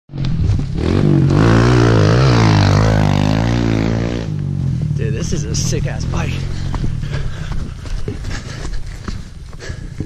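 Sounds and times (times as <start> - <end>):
dirt bike engine revving: 0.1 - 7.0.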